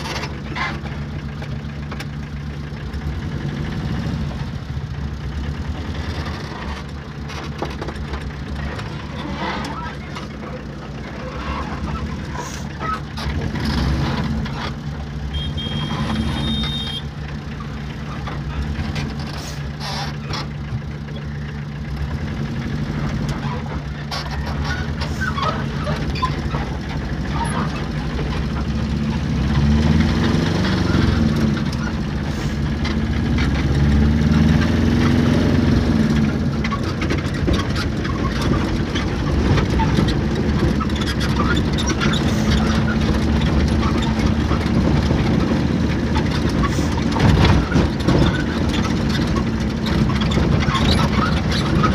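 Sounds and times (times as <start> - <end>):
vehicle engine running: 0.0 - 51.9
clicks and rattles: 6.0 - 15.0, 17.9 - 21.2, 35.8 - 51.9.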